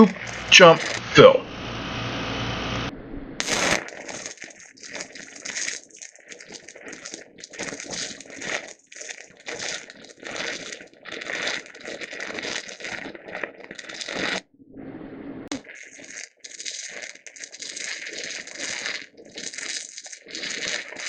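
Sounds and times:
welding arc crackling: 0.0s - 1.4s, 3.4s - 14.4s, 15.5s - 21.0s.

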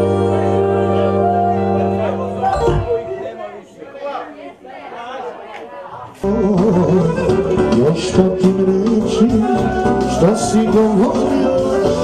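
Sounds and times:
people talking in echoing hall: 0.0s - 12.0s.

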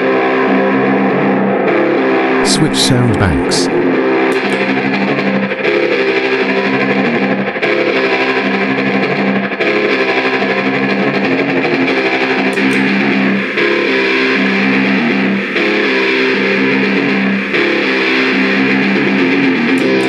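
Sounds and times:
electric guitar riff: 1.0s - 20.0s.

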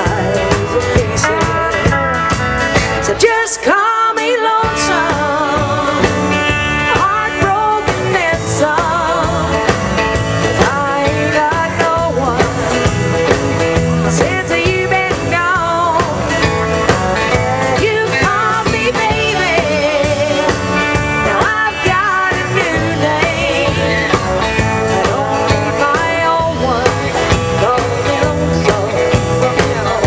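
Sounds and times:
drum kit beat: 0.0s - 30.0s
live band playing: 0.0s - 30.0s
strummed guitars: 0.0s - 30.0s
woman singing: 0.0s - 30.0s.

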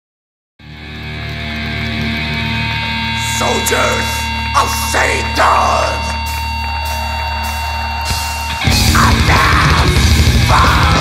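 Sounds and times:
heavy metal band playing: 0.7s - 11.0s.

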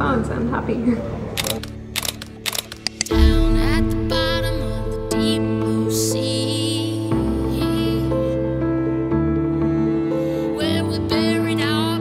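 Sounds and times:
soft background music: 0.0s - 12.0s
camera shutter clicking: 1.4s - 3.1s.

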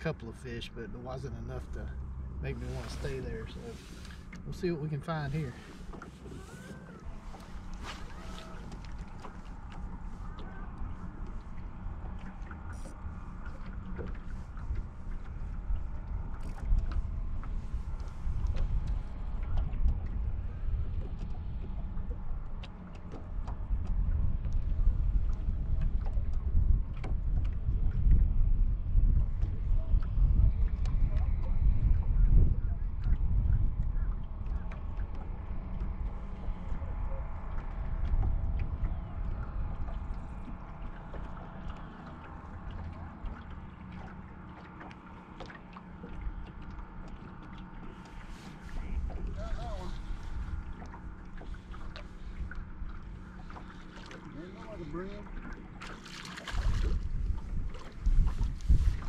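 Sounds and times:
small waves lapping against hull: 0.0s - 59.0s
wind gusting on microphone: 24.0s - 34.4s, 56.5s - 59.0s.

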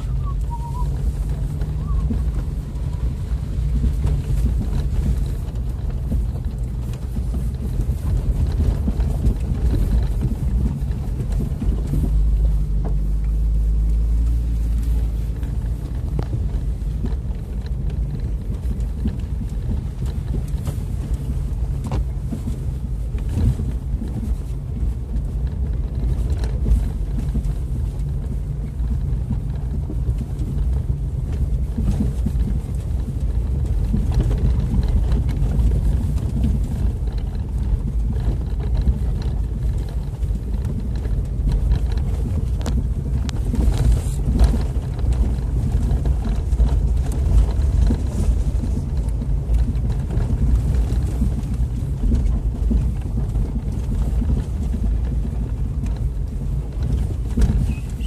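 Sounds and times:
engine low rumble: 0.0s - 58.0s
knocks and rattles from bumps: 0.9s - 58.0s.

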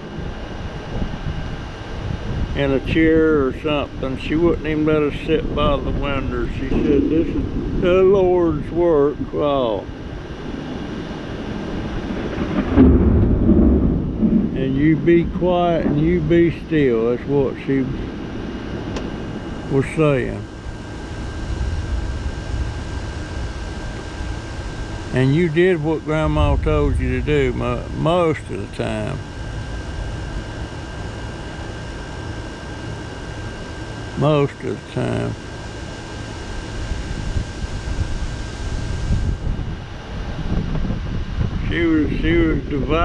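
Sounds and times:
gusty wind buffeting microphone: 0.0s - 34.2s, 35.4s - 43.0s
air conditioner whine: 0.0s - 43.0s
low rumble: 0.0s - 43.0s.

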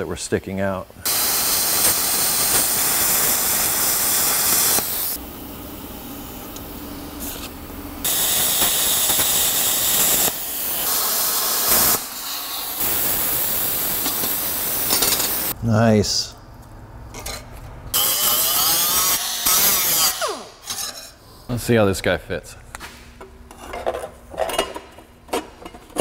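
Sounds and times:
plasma cutter hissing: 1.0s - 5.2s, 7.2s - 15.6s.

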